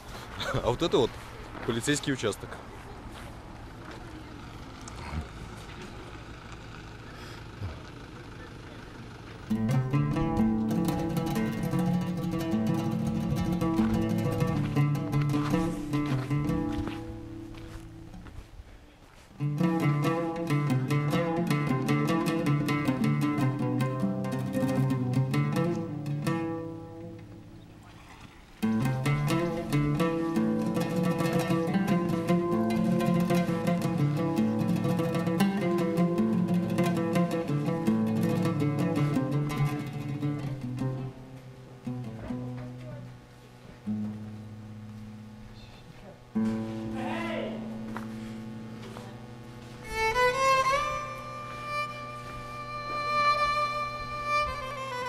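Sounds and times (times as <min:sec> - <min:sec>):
background instrumental music: 0:09.5 - 0:18.1, 0:19.4 - 0:27.6, 0:28.6 - 0:42.1, 0:49.8 - 0:55.0.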